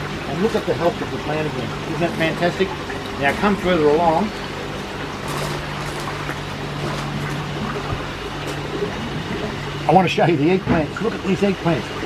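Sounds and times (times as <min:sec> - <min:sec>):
low constant hum: 0:00.0 - 0:12.0
running water: 0:00.0 - 0:12.0.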